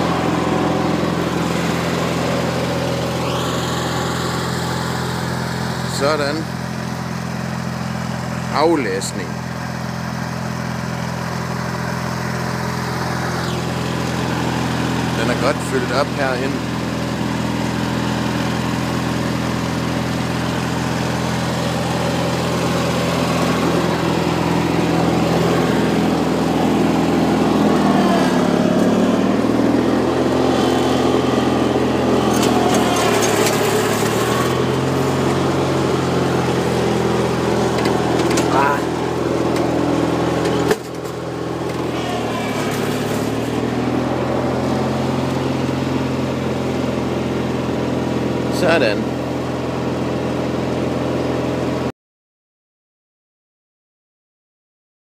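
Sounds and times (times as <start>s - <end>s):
lawn tractor engine running: 0.0s - 51.9s.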